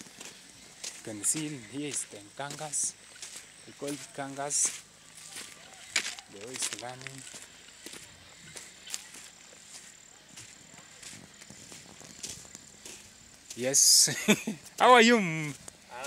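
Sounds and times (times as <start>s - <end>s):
soft footsteps on grass and dirt: 0.0s - 16.0s.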